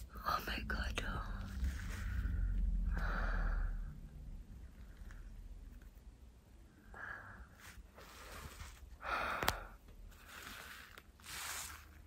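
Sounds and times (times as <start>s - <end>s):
woman whispering: 0.0s - 1.7s.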